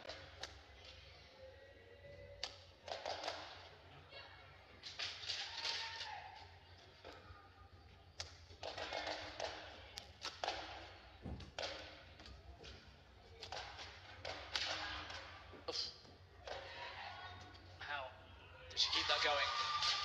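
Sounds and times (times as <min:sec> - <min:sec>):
low hall hum: 0:00.0 - 0:20.0
racket hitting shuttlecock: 0:08.6 - 0:10.8.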